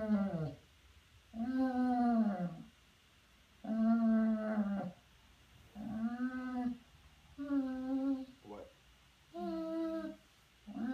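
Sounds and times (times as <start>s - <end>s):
dog whining: 0.0s - 0.6s, 1.3s - 2.7s, 3.6s - 5.0s, 5.7s - 6.8s, 7.4s - 8.4s, 9.3s - 10.9s.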